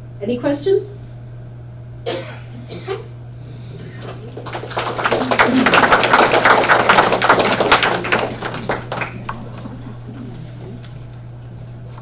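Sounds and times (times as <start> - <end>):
audience applauding: 4.0 - 9.7.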